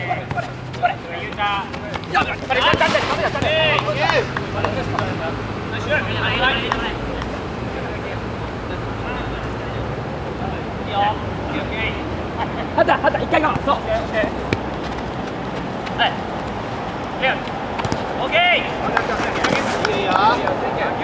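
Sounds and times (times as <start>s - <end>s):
players shouting calls: 0.0s - 5.2s
ball being kicked: 17.8s - 18.1s.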